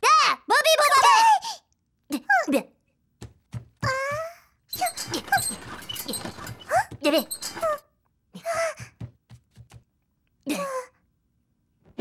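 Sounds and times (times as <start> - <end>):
rough scraping noise: 4.8 - 7.8
squeaky cartoon chirps and whimpers: 4.8 - 7.8.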